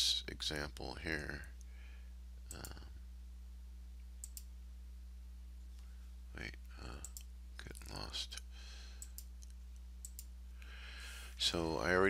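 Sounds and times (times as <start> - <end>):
low electrical hum: 0.0 - 12.0
computer mouse clicks: 2.5 - 2.8, 4.2 - 4.5, 9.0 - 10.3.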